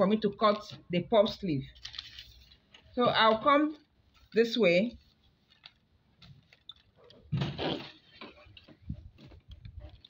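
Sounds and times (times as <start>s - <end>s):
paper rustling and crinkling: 1.6s - 10.0s.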